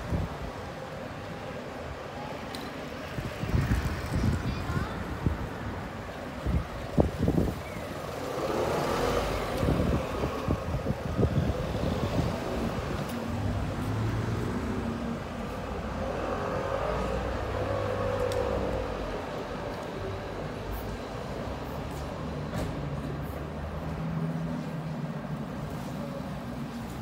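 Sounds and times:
road traffic passing: 0.0s - 27.0s.

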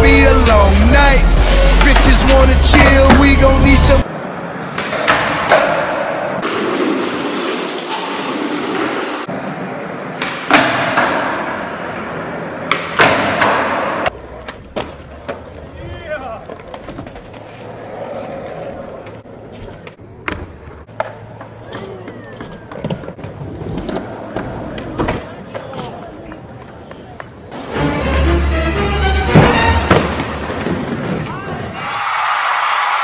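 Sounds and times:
music with heavy bass: 0.0s - 4.0s.

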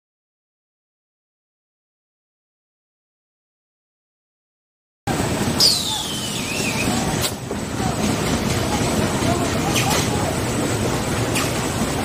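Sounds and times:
machine running: 5.1s - 12.0s.

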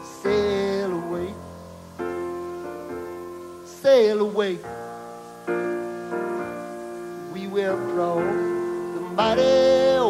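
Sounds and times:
man singing: 0.0s - 1.6s, 3.6s - 4.9s, 7.2s - 10.0s
piano playing chords: 0.0s - 10.0s.

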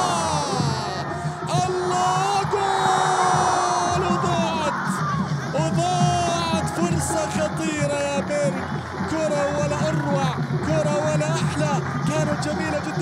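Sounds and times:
commentator's excited cries: 0.0s - 13.0s
crowd chanting and singing: 0.0s - 13.0s
stadium crowd noise: 0.0s - 13.0s.

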